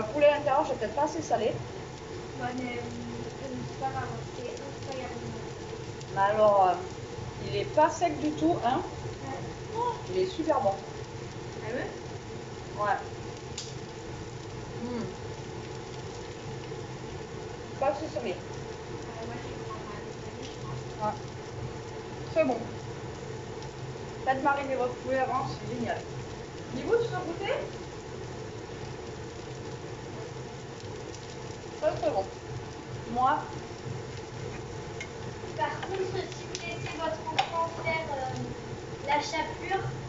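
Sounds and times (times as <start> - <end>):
faint hiss: 0.0 - 40.0
faint sizzling in a pan: 0.0 - 40.0
kitchen background noise: 0.0 - 40.0
low mechanical hum: 0.0 - 40.0.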